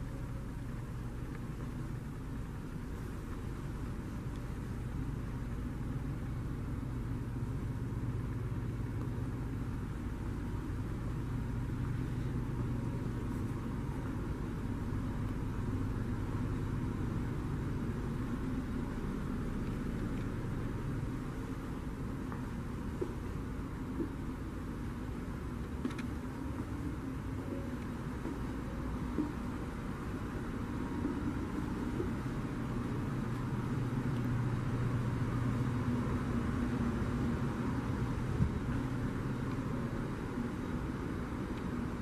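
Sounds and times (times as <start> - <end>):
low rumble with faint hum: 0.0 - 42.0.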